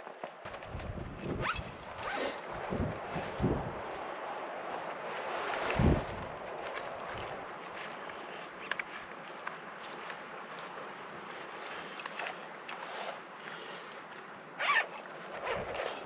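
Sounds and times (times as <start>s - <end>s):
branches and clothing rustling: 0.0s - 16.0s.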